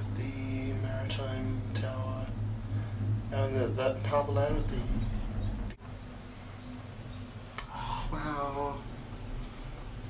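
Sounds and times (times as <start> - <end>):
gondola cabin rumble: 0.0 - 10.0.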